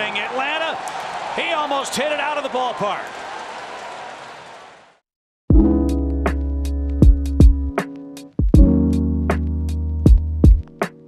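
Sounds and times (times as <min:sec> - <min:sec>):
crowd cheering: 0:00.0 - 0:05.0.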